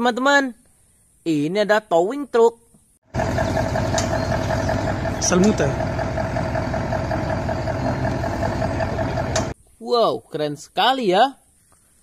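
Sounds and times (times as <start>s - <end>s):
steady engine whine: 3.1s - 9.6s
truck diesel engine rumbling: 3.1s - 9.6s.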